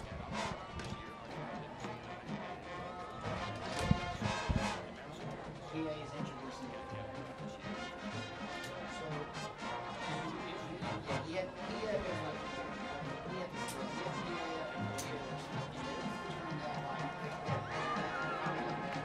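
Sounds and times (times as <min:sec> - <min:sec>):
brass and woodwinds: 0:00.0 - 0:19.0
timpani: 0:03.3 - 0:04.8.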